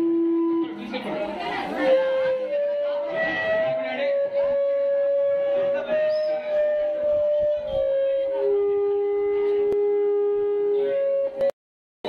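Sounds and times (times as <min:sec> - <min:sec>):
wind instrument holding a note: 0:00.0 - 0:11.5.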